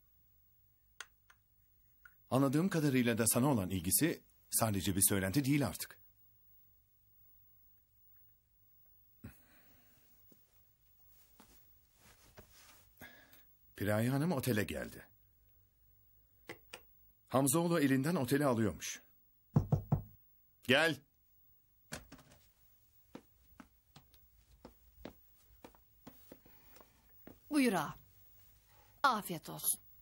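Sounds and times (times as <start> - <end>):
faint footsteps: 10.1 - 13.0, 22.1 - 28.7.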